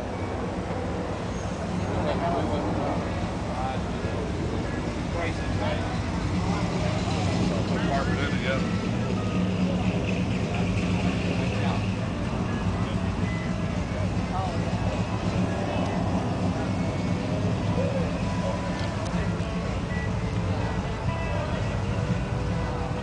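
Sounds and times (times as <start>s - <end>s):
low engine hum: 0.0s - 23.0s.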